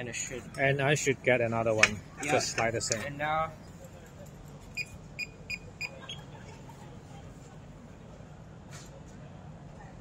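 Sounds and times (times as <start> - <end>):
keypad beeps: 4.8 - 6.2.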